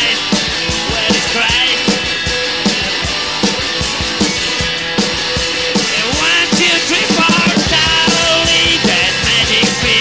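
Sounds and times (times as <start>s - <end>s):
bass guitar: 0.0s - 10.0s
drum kit beat: 0.0s - 10.0s
electric guitars: 0.0s - 10.0s.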